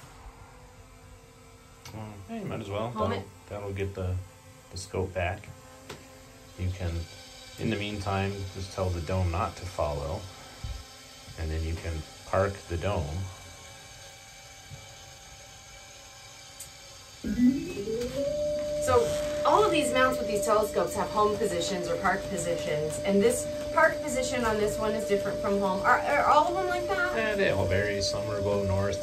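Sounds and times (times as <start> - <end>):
faint steady hum: 0.0 - 29.0
motorized telescope mount whirring: 17.6 - 27.2.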